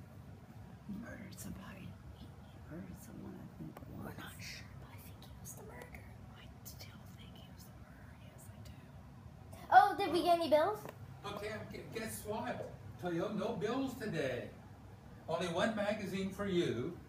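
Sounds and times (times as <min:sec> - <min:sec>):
faint whispered speech: 0:00.9 - 0:09.0.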